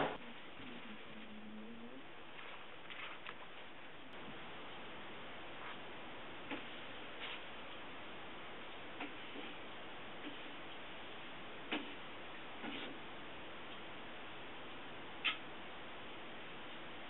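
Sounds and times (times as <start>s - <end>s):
book handling clicks and rustles: 2.3s - 3.7s.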